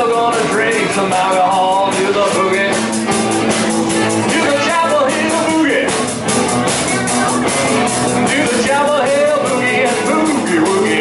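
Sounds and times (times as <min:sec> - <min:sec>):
bending guitar lines: 0:00.0 - 0:11.0
live rock band playing: 0:00.0 - 0:11.0.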